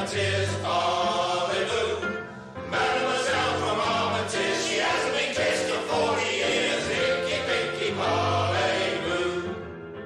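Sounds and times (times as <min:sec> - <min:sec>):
choir singing held chords: 0:00.0 - 0:09.8.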